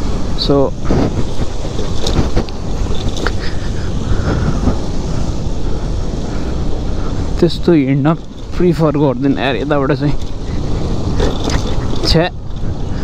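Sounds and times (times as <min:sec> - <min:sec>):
motorbike engine: 0:00.0 - 0:13.0
road noise: 0:00.0 - 0:13.0
wind rushing over microphone: 0:00.0 - 0:13.0.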